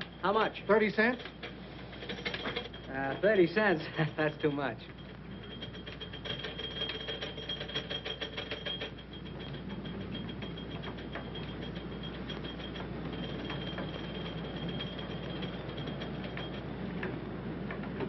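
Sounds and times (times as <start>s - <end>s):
gasoline pump running: 0.0s - 18.0s.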